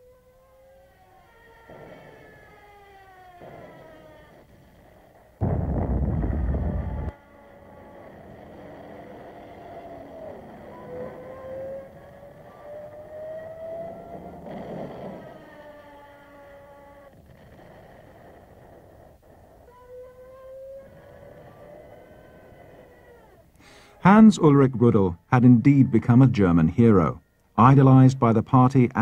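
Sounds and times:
dive-bomber whine: 0:00.7 - 0:23.6.

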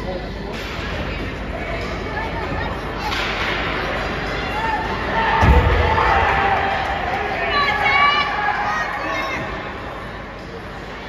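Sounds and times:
low spectator chatter: 0:00.0 - 0:11.0.

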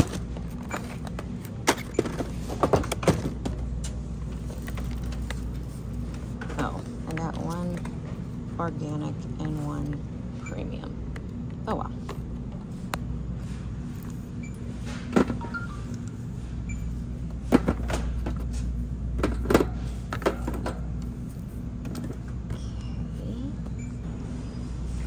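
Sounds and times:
low store background hum: 0:00.0 - 0:25.0.

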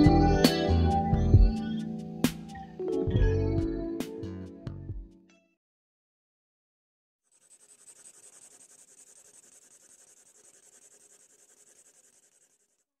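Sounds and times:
drawing tool scratching paper: 0:07.3 - 0:13.0.

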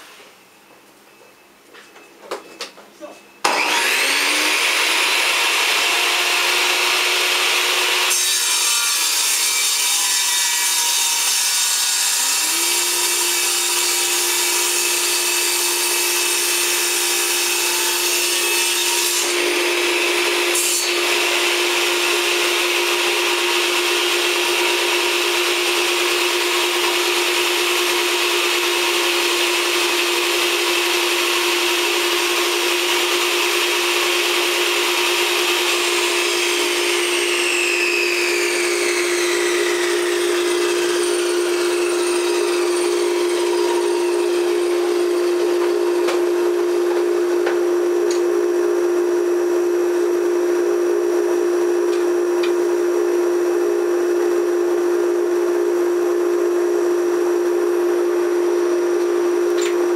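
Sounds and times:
saw cutting wooden board: 0:03.4 - 0:48.1
table saw motor whine: 0:03.4 - 0:59.9.

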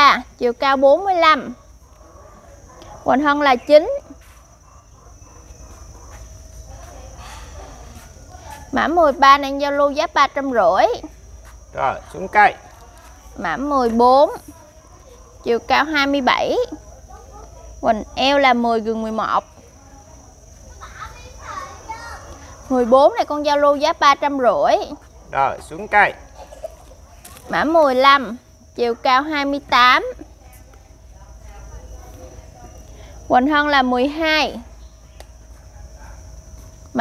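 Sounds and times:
high-pitched insect drone: 0:00.0 - 0:37.0
faint background voices: 0:01.8 - 0:09.2.

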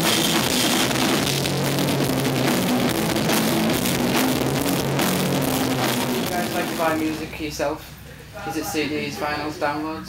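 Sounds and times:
rock band playing: 0:00.0 - 0:07.3
cymbals and drum hits: 0:00.0 - 0:07.4.

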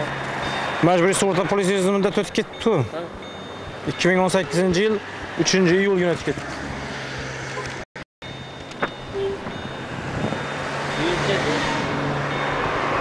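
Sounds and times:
vehicle passing: 0:00.0 - 0:07.8, 0:09.2 - 0:13.0
traffic hum: 0:00.0 - 0:13.0.

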